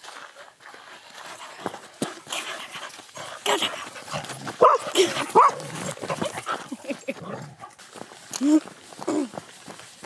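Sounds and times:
dog barking: 0:04.6 - 0:05.9.

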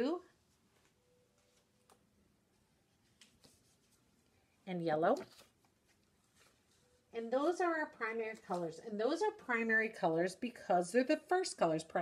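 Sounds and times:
paper rustle: 0:02.9 - 0:04.3, 0:05.1 - 0:09.0.

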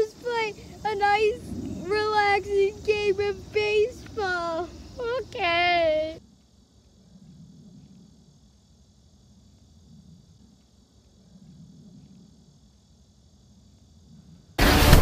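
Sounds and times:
low outdoor rumble: 0:00.0 - 0:15.0
loud music: 0:14.6 - 0:15.0.

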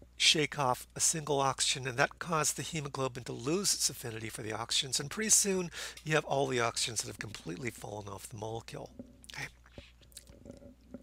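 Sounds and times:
low electrical hum: 0:00.0 - 0:11.0
man breathing: 0:05.7 - 0:06.1
faint mouth clicks: 0:09.2 - 0:10.6.

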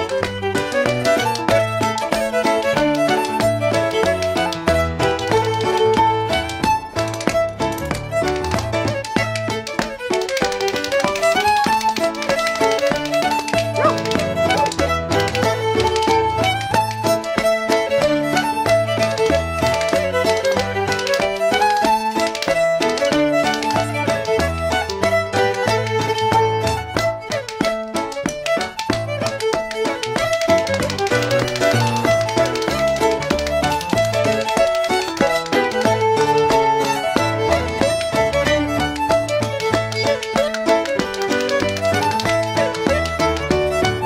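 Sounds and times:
fiddle playing a quick march: 0:00.0 - 0:44.0.

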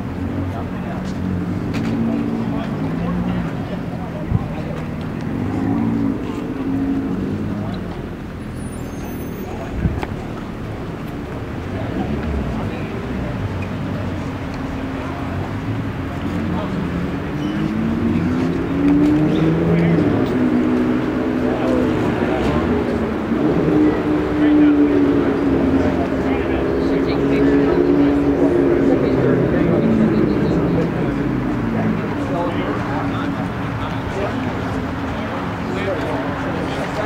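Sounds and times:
car engine rumbling: 0:00.0 - 0:37.0
crowd chatter: 0:00.0 - 0:37.0.

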